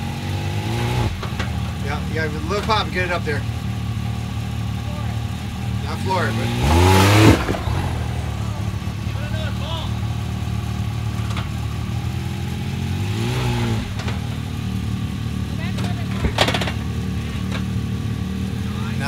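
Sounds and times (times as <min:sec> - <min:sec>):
utility vehicle engine at low revs: 0:00.0 - 0:19.0.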